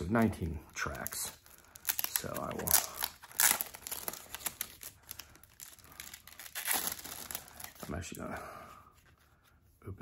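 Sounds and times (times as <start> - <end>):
plastic packaging crinkling: 0.0 - 8.2.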